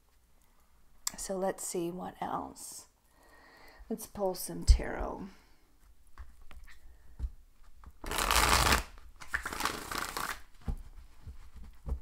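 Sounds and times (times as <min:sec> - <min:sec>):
cards being shuffled by hand: 0:06.2 - 0:12.0.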